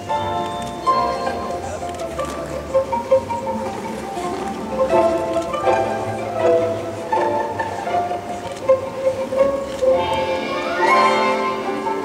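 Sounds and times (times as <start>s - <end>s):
orchestra playing light pops music: 0.0s - 12.0s.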